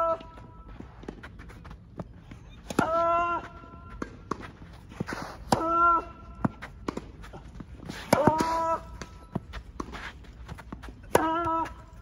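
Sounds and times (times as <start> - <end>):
quick footsteps on court: 0.0 - 12.0
tennis ball struck and bouncing: 3.9 - 11.8.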